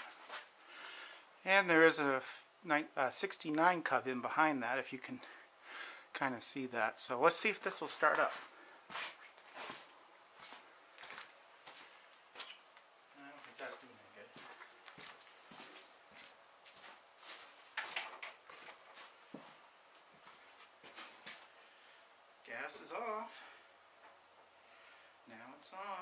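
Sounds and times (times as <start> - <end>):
footsteps: 0.0 - 0.6, 7.6 - 21.8
knocks and clatters of handled items: 17.6 - 19.4.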